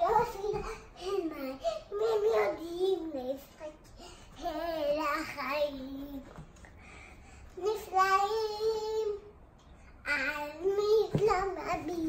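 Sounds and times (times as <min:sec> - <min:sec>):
girl singing: 0:00.0 - 0:06.5, 0:07.6 - 0:09.4, 0:10.0 - 0:12.0.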